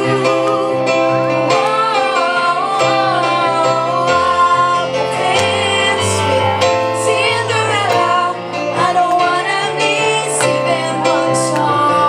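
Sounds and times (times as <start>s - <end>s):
keyboard accompaniment: 0.0s - 12.0s
woman singing into a microphone: 0.0s - 12.0s.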